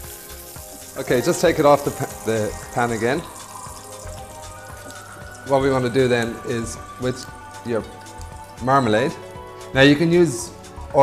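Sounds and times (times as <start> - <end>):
oil sizzling in frying pan: 0.0 - 10.8
soft background music: 0.0 - 11.0.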